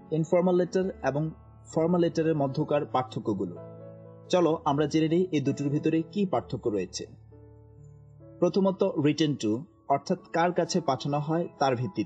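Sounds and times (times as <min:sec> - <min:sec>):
quiet background music: 0:00.0 - 0:12.0
man speaking: 0:04.3 - 0:07.1.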